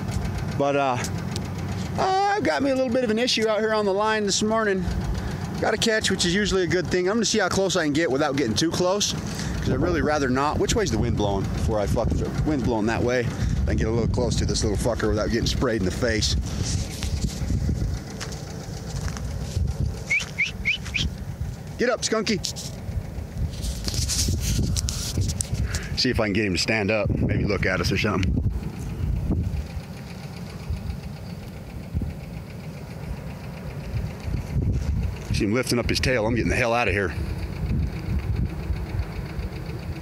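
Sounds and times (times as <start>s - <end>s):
wind rumbling on microphone: 9.2s - 21.8s, 22.4s - 32.4s, 33.8s - 40.0s
footsteps on dry dirt: 16.4s - 21.7s
bird chirping: 20.0s - 21.2s.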